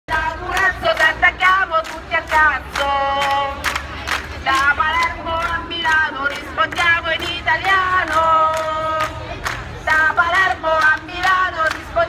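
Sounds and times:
crowd noise: 0.1s - 12.0s.

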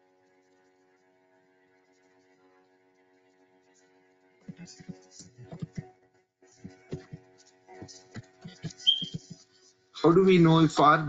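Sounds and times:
keyboard typing: 4.5s - 5.8s, 8.2s - 9.4s.

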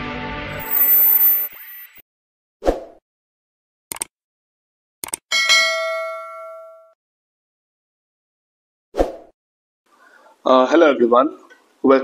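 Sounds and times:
cursor clicks: 3.9s - 4.1s, 5.0s - 5.2s
notification bell ding: 5.3s - 6.9s.

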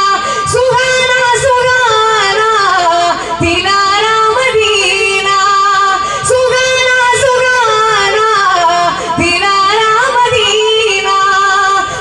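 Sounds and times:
person singing into a microphone: 0.0s - 12.0s.

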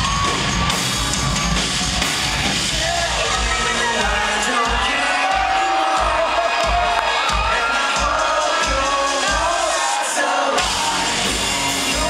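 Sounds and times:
live rock band playing: 0.0s - 9.8s, 10.5s - 12.0s
audience cheering: 0.0s - 12.0s.

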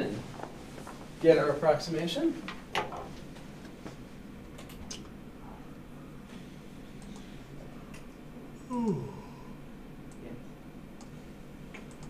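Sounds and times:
low room hum: 0.0s - 12.0s
computer mouse clicks: 7.0s - 7.3s, 11.0s - 12.0s.

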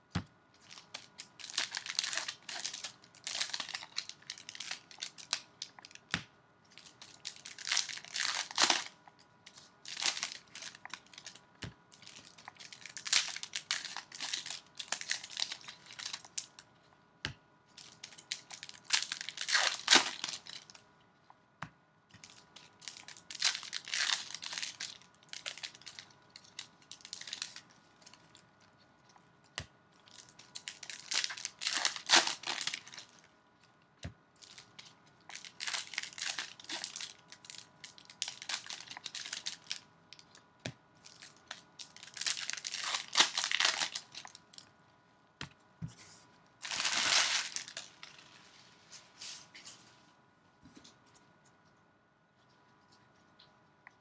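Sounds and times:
wrappers crinkling and tearing: 0.6s - 6.0s, 6.7s - 16.6s, 17.8s - 20.8s, 22.2s - 28.8s, 30.0s - 33.3s, 34.4s - 40.4s, 41.0s - 44.6s, 46.6s - 49.5s.

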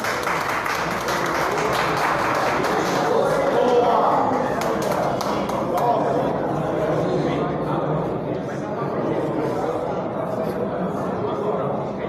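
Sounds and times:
spectators applauding: 0.0s - 5.9s.

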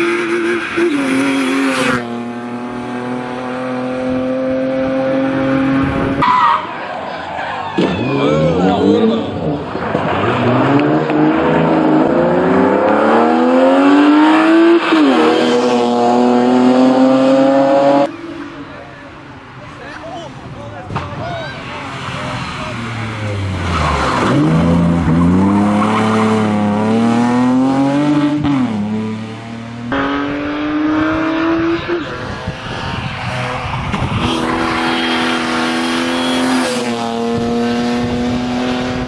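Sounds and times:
car engine revving: 0.0s - 6.9s, 7.8s - 19.1s, 21.6s - 39.0s.

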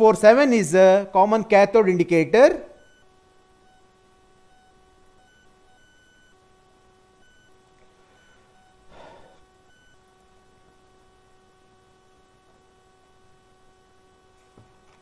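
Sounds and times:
faint electrical hum: 0.0s - 15.0s.

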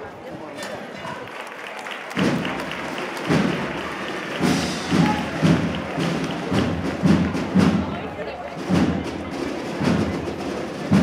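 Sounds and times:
bass drum beats: 2.2s - 8.0s
band playing a march: 2.2s - 11.0s.

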